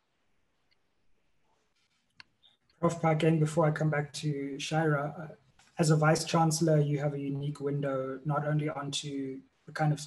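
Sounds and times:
man speaking: 2.8s - 10.0s.

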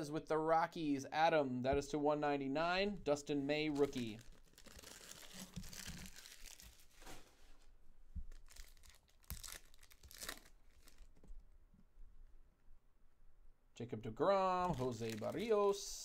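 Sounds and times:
foil wrapper crinkling: 3.8s - 7.4s, 8.3s - 11.3s, 14.6s - 15.8s
foil wrapper tearing: 3.9s - 7.2s, 8.3s - 11.2s, 14.6s - 15.6s.

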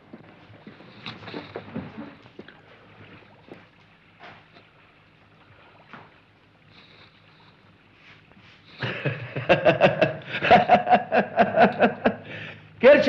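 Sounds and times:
footsteps on tiled floor: 0.0s - 2.6s
soft knocks and rustles: 0.0s - 4.7s.

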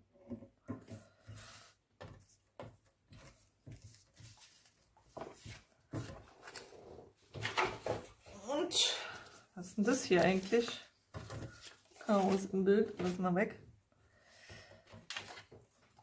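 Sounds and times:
paper scraps rustling: 9.8s - 13.2s.

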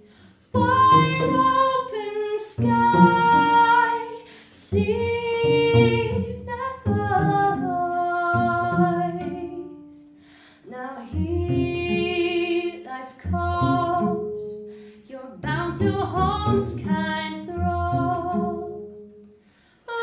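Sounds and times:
woman singing long held notes: 0.0s - 9.9s, 10.6s - 18.9s
bowed cello: 0.0s - 19.5s.

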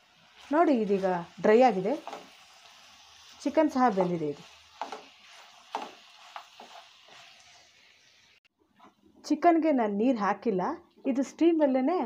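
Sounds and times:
chicken frying in a pan: 0.0s - 8.5s.

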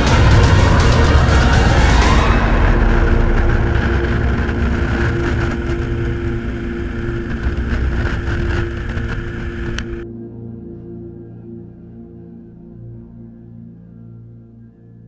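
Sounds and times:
motorcycle engine: 0.0s - 10.0s
wind noise: 0.0s - 10.0s
ambient music with drone: 0.0s - 15.0s.

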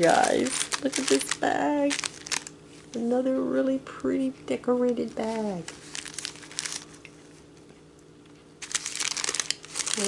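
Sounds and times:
plastic bag crinkling: 0.0s - 3.1s, 4.9s - 7.3s, 8.6s - 10.0s.

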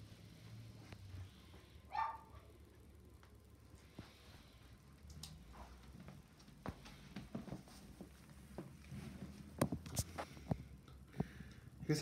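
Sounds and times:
dog barking: 1.9s - 2.4s.

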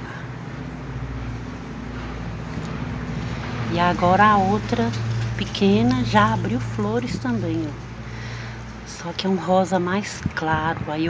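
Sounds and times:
low motor hum: 0.0s - 10.9s.

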